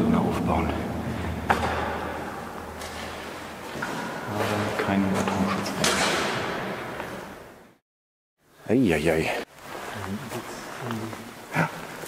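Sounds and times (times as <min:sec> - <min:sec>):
low steady background noise: 0:00.0 - 0:07.8, 0:08.4 - 0:12.0
sharp knock echoing in hall: 0:01.4 - 0:03.0.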